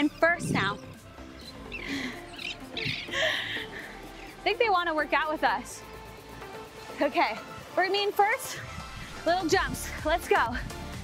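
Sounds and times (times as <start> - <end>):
seabirds calling: 0.0 - 9.8
quiet background music: 0.0 - 11.0.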